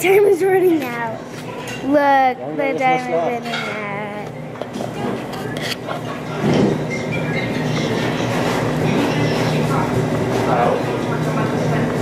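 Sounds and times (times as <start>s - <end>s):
restaurant hum and murmur: 0.0s - 12.0s.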